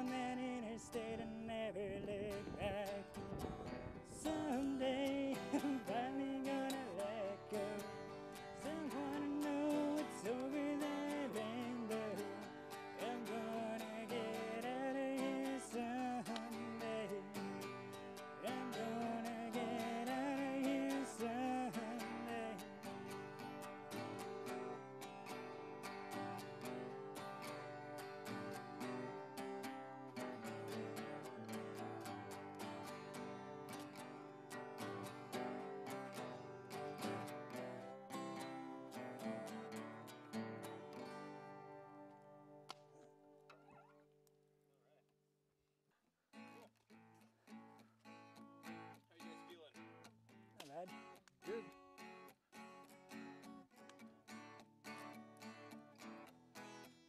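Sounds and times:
acoustic guitars strumming: 0.0 - 44.0, 46.3 - 57.0.

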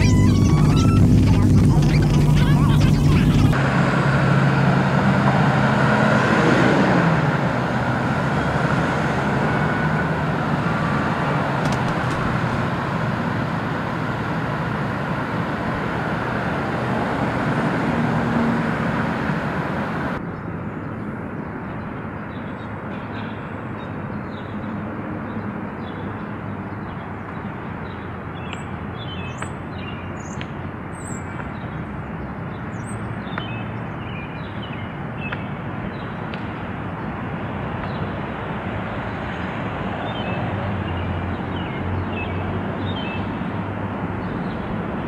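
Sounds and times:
vehicle passing by: 0.0 - 20.2
passing vehicles: 0.0 - 45.0.

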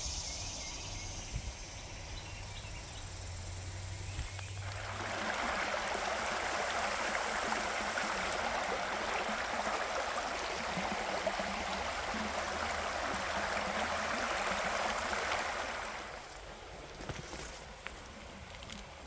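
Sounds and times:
creek water running over rocks: 3.9 - 19.0.

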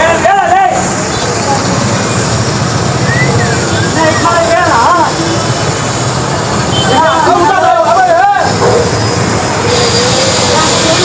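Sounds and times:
diesel engine rumbling: 0.0 - 11.0.

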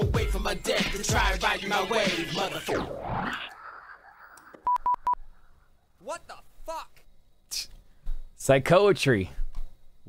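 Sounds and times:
hip-hop track: 0.0 - 4.1
short electronic beeps: 4.6 - 5.2.

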